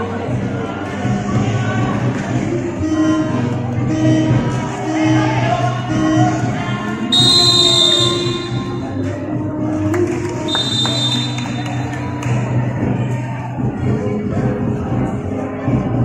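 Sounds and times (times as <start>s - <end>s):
music playing: 0.0s - 16.0s
high whistle blasts: 7.1s - 9.0s, 10.5s - 11.6s.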